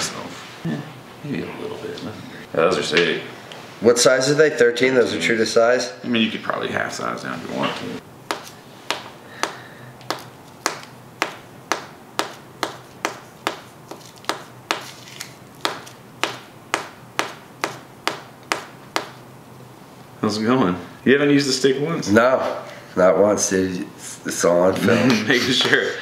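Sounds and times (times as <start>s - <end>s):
paper cone tapping on plate: 8.3s - 19.2s.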